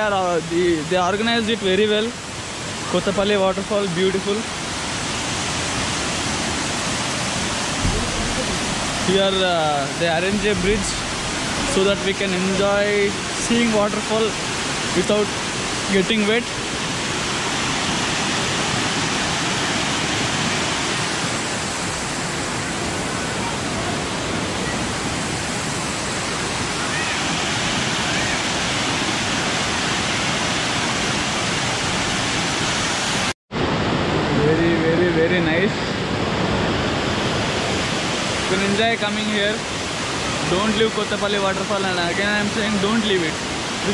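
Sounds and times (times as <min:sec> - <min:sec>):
waterfall rushing: 0:00.0 - 0:43.9.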